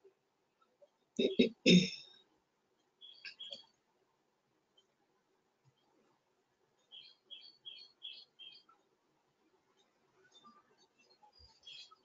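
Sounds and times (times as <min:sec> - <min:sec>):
small bird chirping: 0:03.0 - 0:03.7, 0:06.8 - 0:08.8, 0:10.2 - 0:12.0.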